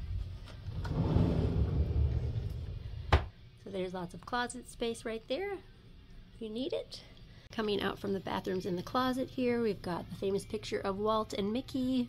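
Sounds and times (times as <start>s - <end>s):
sliding door rumbling on track: 0.6s - 3.0s.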